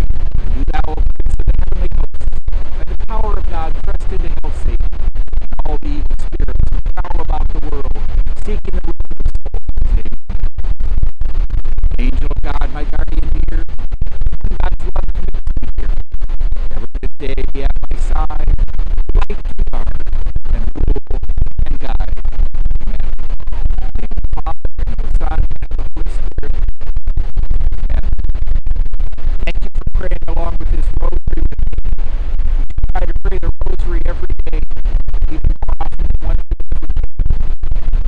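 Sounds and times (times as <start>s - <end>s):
wind buffeting microphone: 0.0s - 38.0s
man talking: 0.5s - 1.0s, 2.8s - 4.8s, 5.6s - 8.9s, 9.8s - 10.1s, 12.0s - 13.7s, 14.6s - 15.0s, 16.8s - 18.5s, 19.2s - 19.9s, 20.5s - 22.1s, 23.8s - 26.6s, 29.5s - 31.5s, 33.0s - 34.6s, 35.3s - 36.4s.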